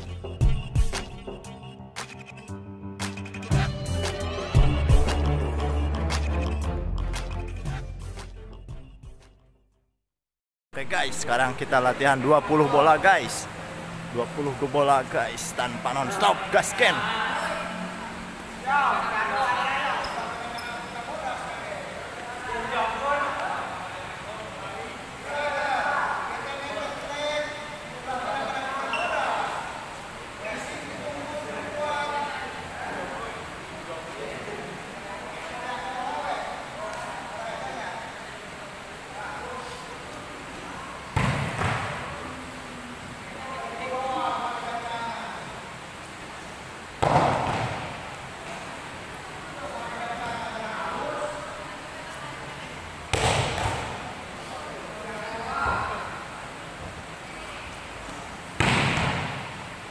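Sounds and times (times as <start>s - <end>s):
voices calling out in a hall: 10.8s - 41.2s, 41.8s - 47.0s, 47.9s - 53.1s, 53.8s - 58.6s
volleyball spike slap: 41.2s - 42.0s, 47.0s - 47.9s, 53.1s - 53.9s, 58.6s - 59.5s.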